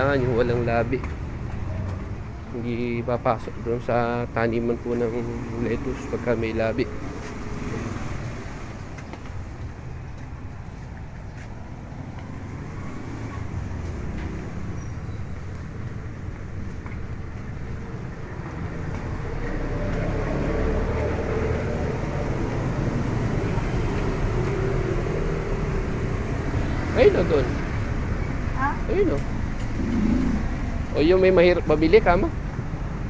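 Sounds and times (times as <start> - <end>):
traffic rumble: 0.0 - 33.0.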